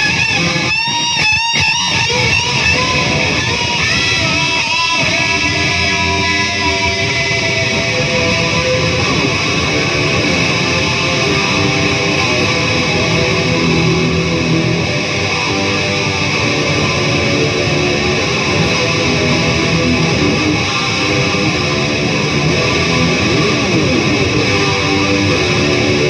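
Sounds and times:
electric guitar through amplifier: 0:00.0 - 0:26.0.

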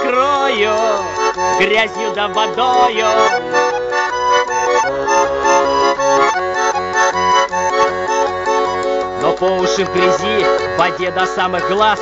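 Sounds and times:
button accordion playing: 0:00.0 - 0:12.0.

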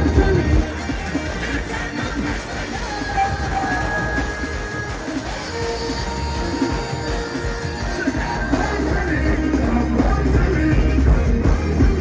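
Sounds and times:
loud soca music over speakers: 0:00.0 - 0:12.0.

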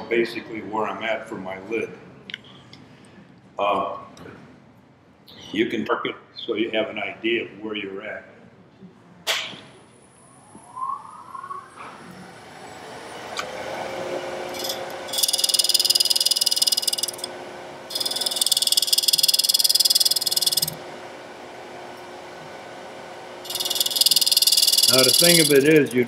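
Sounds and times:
lathe motor whining and humming: 0:11.8 - 0:26.0
metal point rasping on spinning wood: 0:14.6 - 0:17.3, 0:17.9 - 0:20.8, 0:23.5 - 0:26.0.

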